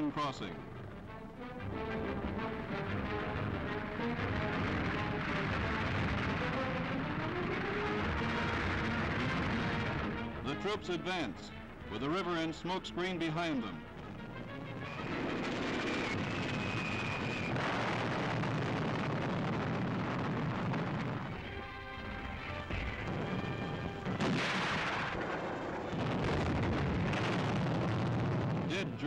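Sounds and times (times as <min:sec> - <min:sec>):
music: 0:00.0 - 0:29.0
artillery fire: 0:04.0 - 0:10.4, 0:14.8 - 0:28.8
gunfire: 0:17.5 - 0:21.2, 0:22.4 - 0:28.8.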